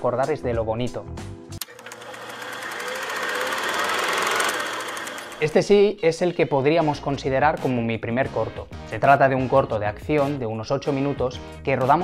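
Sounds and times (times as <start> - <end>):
rapid mechanical clattering: 1.8 - 5.6.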